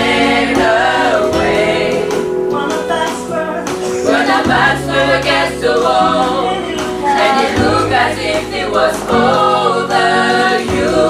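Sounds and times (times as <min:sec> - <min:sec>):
women's choir singing gospel: 0:00.0 - 0:11.0.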